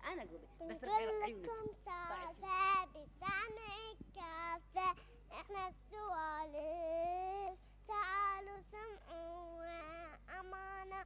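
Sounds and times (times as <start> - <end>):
girl singing into a microphone: 1.5 - 11.0.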